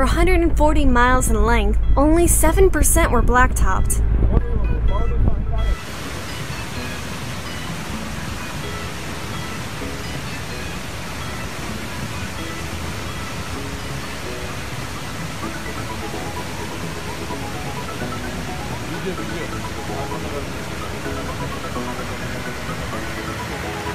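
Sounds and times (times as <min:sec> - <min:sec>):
faint music notes: 0:00.0 - 0:23.9
waterfall rushing onto road: 0:05.8 - 0:23.9.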